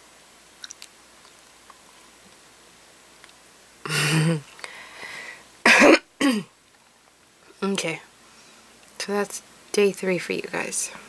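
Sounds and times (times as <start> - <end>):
woman coughing: 3.9 - 4.4, 5.6 - 6.5.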